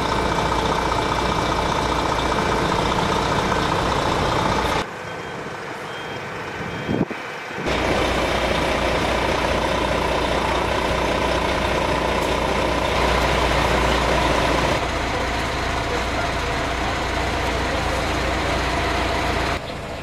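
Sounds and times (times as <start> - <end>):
diesel engine running: 0.0 - 20.0.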